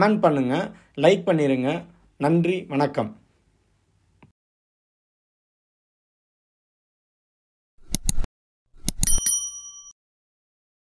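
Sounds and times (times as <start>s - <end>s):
bright bell ding: 9.0s - 10.0s.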